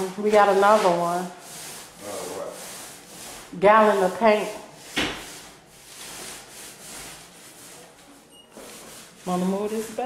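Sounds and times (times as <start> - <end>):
paint roller swishing on wall: 0.0 - 10.0.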